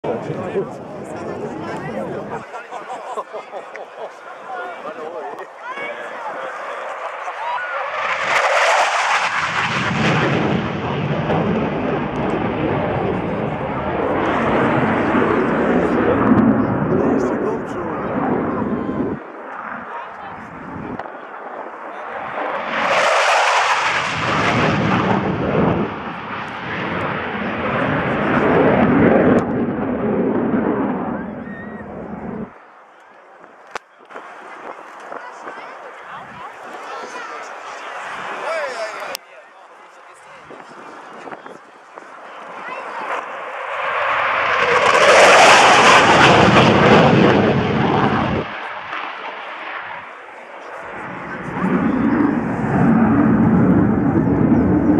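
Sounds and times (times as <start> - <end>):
jet flying low: 0.0 - 54.9.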